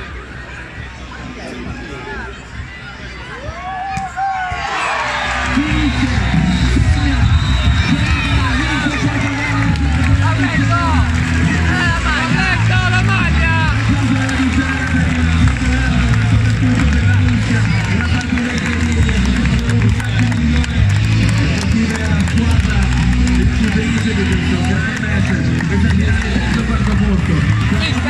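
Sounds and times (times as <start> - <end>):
voices: 0.0 - 28.0
loud music with heavy bass beat: 5.6 - 28.0.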